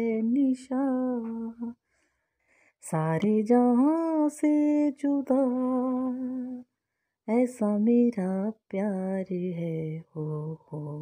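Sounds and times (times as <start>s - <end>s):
person singing unaccompanied: 0.0s - 1.8s, 2.9s - 6.6s.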